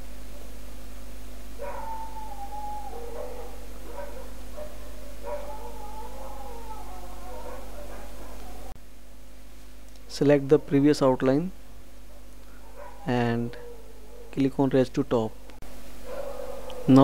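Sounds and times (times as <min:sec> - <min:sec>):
electrical hum: 0:00.0 - 0:17.0
animal howling: 0:01.6 - 0:08.8, 0:12.5 - 0:14.7, 0:15.3 - 0:17.0.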